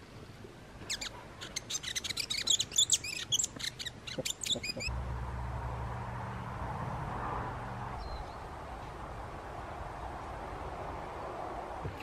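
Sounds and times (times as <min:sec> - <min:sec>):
bird chirping high squeaky song: 0:00.9 - 0:04.9.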